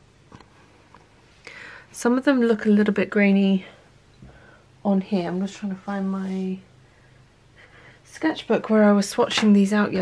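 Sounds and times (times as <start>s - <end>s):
soft intake of breath: 1.3s - 1.9s, 6.8s - 8.1s.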